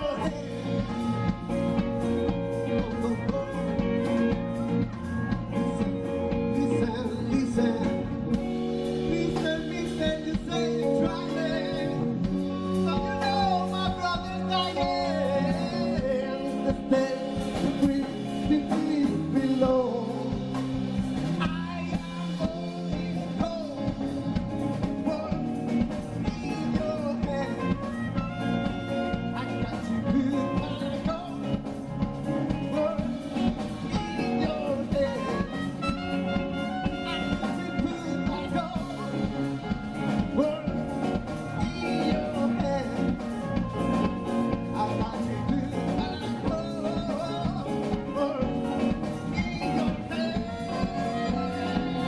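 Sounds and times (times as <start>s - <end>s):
bass guitar: 0.0s - 52.0s
drum kit: 0.0s - 52.0s
electric guitar: 0.0s - 52.0s
man singing: 0.0s - 52.0s.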